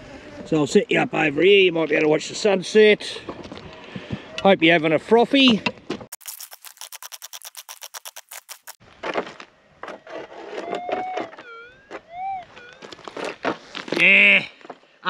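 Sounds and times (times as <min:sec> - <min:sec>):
pick scraping gravelly ground: 0:00.0 - 0:15.0
metal detector gliding tone: 0:10.2 - 0:13.1.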